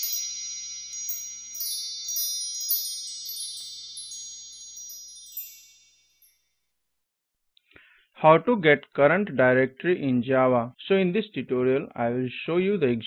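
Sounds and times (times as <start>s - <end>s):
sparkling strikes: 0.0s - 6.3s
shimmering high-pitched chimes: 0.0s - 6.7s.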